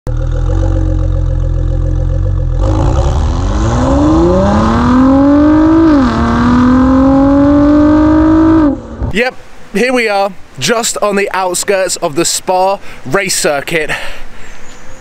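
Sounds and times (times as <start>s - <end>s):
car engine accelerating: 0.1s - 9.1s.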